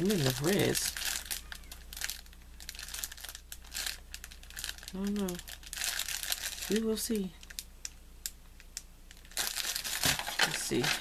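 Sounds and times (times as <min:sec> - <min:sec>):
plastic wrap crinkling: 0:00.0 - 0:07.9, 0:08.6 - 0:11.0.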